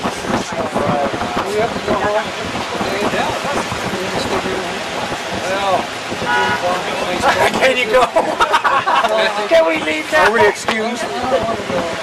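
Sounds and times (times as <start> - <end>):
people talking outdoors: 0.0 - 12.0.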